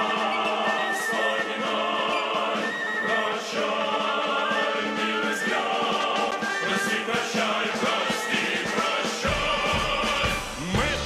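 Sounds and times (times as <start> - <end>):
male choir singing a march: 0.0 - 11.0.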